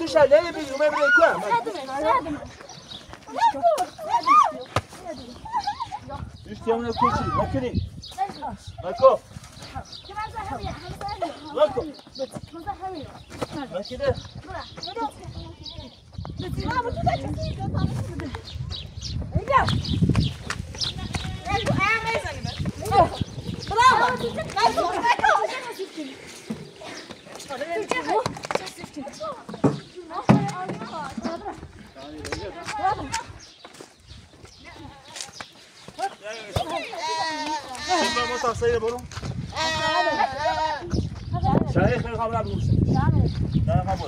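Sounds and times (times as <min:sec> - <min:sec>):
people talking: 0:20.8 - 0:26.2
goat bleating: 0:36.8 - 0:38.5, 0:39.5 - 0:41.0.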